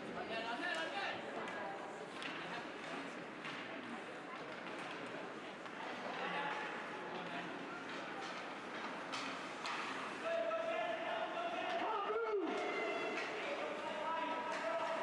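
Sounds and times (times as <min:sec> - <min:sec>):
hockey sticks knocking puck: 0:07.8 - 0:10.2, 0:12.5 - 0:15.0.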